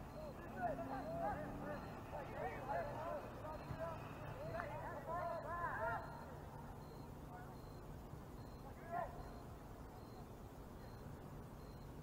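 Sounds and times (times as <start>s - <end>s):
players shouting: 0.0s - 6.2s
low outdoor rumble: 0.0s - 12.0s.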